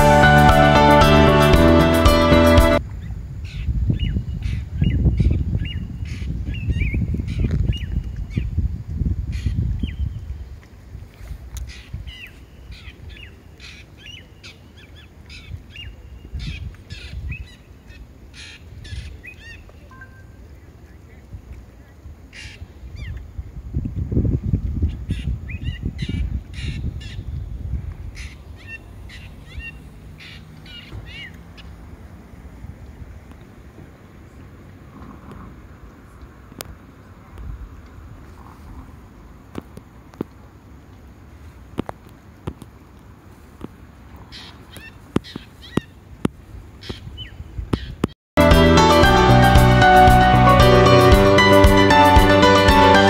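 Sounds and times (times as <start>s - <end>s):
bird calling and chirping: 28.2s - 31.8s.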